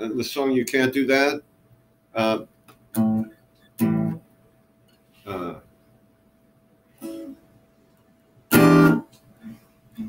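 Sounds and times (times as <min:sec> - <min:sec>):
acoustic guitar strummed chords: 0:03.0 - 0:04.2, 0:07.0 - 0:07.5, 0:08.5 - 0:10.0.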